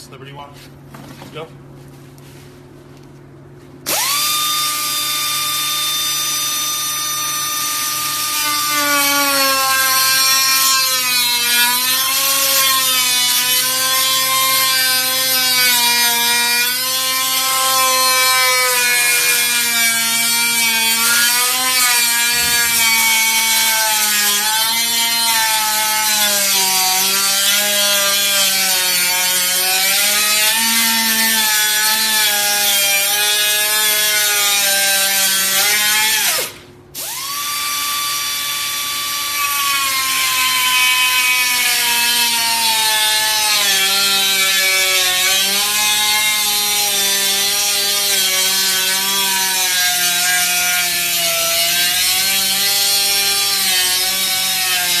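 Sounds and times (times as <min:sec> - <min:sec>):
pneumatic cut-off tool whining: 0:03.8 - 0:26.6, 0:34.6 - 0:41.3.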